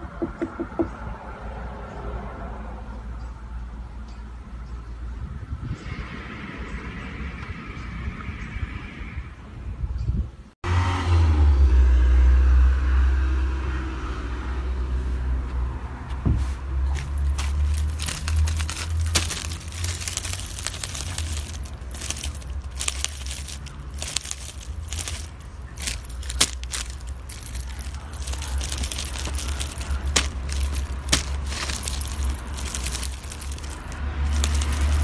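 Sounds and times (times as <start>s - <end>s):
cat toy jingling and rattling: 16.9s - 35.0s.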